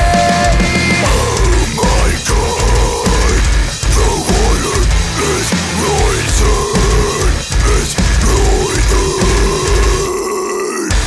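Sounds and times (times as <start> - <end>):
harsh growled vocal: 0.0 - 11.0
metalcore band playing: 0.0 - 11.0.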